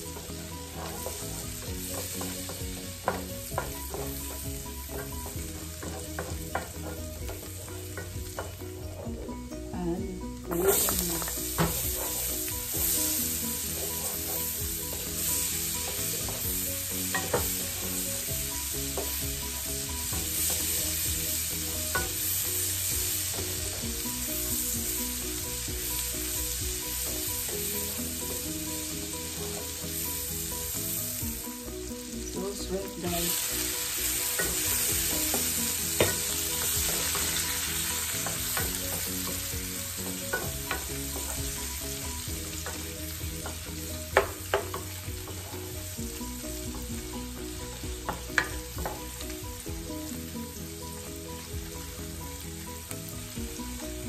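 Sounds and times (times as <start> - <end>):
wooden spoon stirring and scraping: 0.0 - 9.1, 10.5 - 18.0
butter sizzling in frying pan: 0.0 - 54.0
spoon tapping pan: 0.1 - 9.3, 10.5 - 22.3, 33.2 - 45.5, 47.6 - 49.1.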